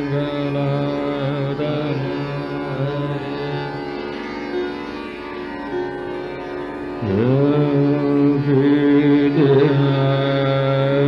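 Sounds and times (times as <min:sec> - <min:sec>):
man singing long note: 0:00.0 - 0:03.6, 0:07.0 - 0:11.0
harmonium accompaniment: 0:00.0 - 0:11.0.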